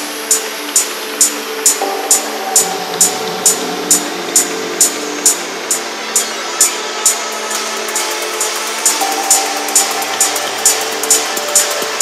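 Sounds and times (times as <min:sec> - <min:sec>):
techno percussion hits: 0:01.6 - 0:12.0
sustained synth tones: 0:01.8 - 0:12.0.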